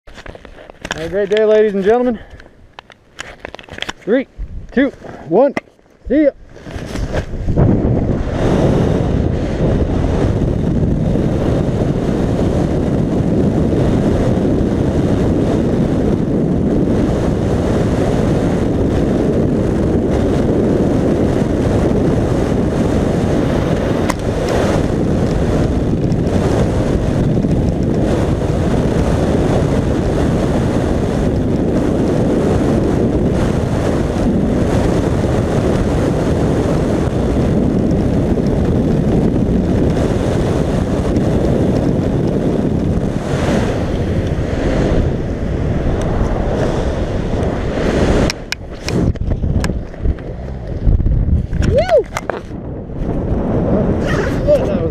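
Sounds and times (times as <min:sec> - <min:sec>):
rush of air buffeting microphone: 0:00.0 - 0:54.9.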